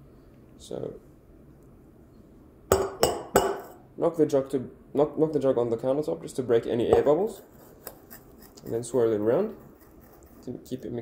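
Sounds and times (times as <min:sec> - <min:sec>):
metal jug knocking on countertop: 0:02.7 - 0:03.8.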